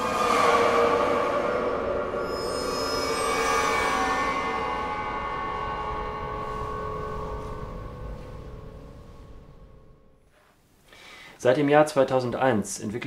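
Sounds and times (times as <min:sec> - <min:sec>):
ringing piano strings: 0:00.0 - 0:10.2.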